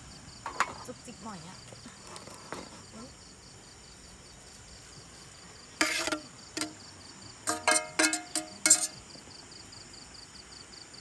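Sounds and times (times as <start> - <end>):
crickets chirping: 0.0 - 11.0
frying pan clanking: 5.8 - 6.8, 7.4 - 9.0.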